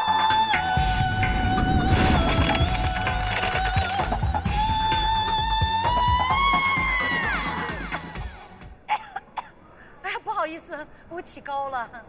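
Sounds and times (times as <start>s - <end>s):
backing music: 0.0s - 8.8s.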